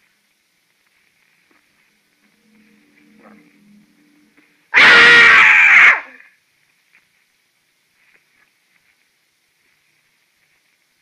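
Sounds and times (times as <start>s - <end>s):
man screaming: 4.7s - 6.3s.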